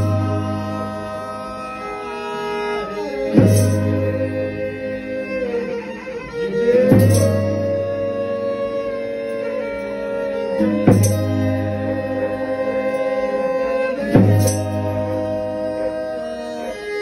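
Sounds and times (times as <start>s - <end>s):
fiddle bowing held notes: 0.0s - 17.0s
strummed viola: 0.0s - 17.0s.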